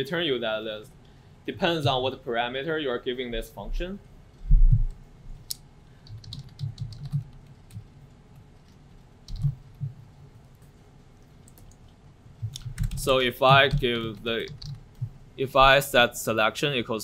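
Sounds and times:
computer keyboard typing: 6.0 - 15.2.

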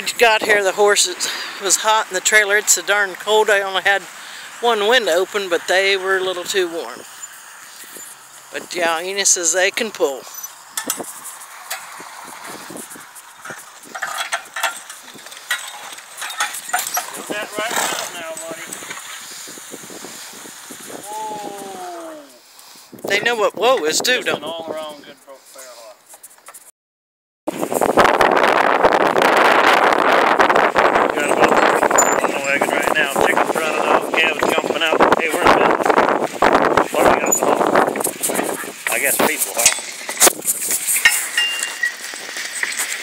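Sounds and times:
sled scraping over dirt: 0.0 - 22.1, 27.5 - 43.0
horse hooves scuffing: 10.0 - 19.7, 25.4 - 26.7, 37.2 - 43.0
harness chains clinking: 10.2 - 12.0, 12.8 - 18.7, 31.2 - 32.6, 38.1 - 43.0
wind buffeting microphone: 10.6 - 14.2, 16.9 - 22.1, 22.9 - 25.0, 27.5 - 42.4.

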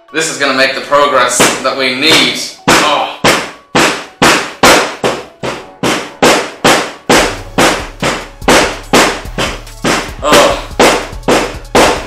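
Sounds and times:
hammer striking hard sand: 2.2 - 12.0.

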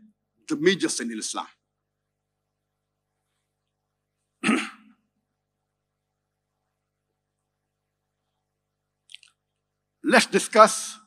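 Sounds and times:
cough into microphone: 4.4 - 5.0.

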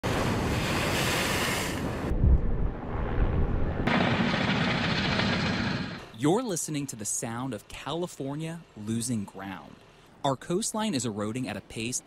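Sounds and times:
wind noise: 0.0 - 4.1.

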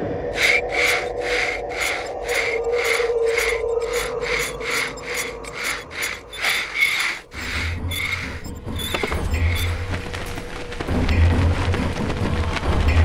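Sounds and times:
low musical drone: 0.0 - 13.0
pencil scratching on slate: 0.4 - 9.6.

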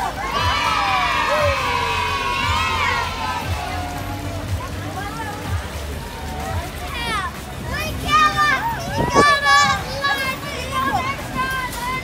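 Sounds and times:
children shouting and squealing: 0.0 - 5.4, 6.3 - 12.0.

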